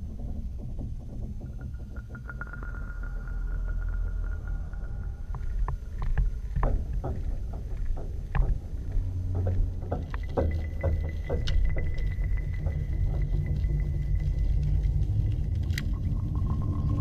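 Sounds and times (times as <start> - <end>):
low rumble: 0.0 - 17.0.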